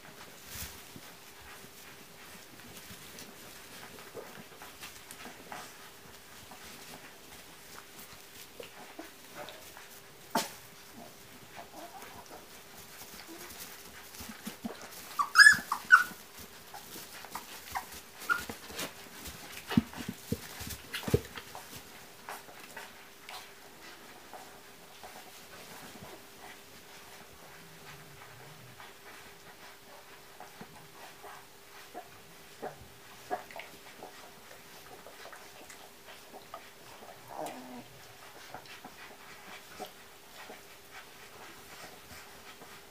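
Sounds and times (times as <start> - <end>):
licking and nursing rustles: 0.0 - 42.9
puppies whimpering and squeaking: 11.6 - 19.0.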